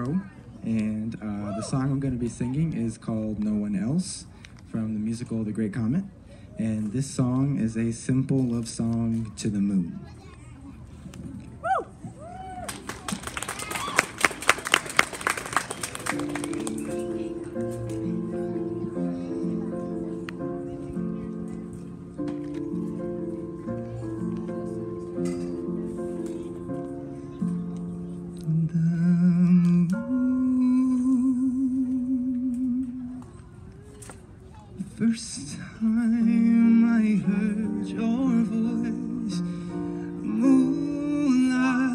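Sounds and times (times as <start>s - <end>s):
audience cheering: 12.2s - 16.4s
scattered clapping: 12.6s - 17.1s
piano accompaniment over speakers: 14.0s - 33.5s, 34.8s - 41.9s.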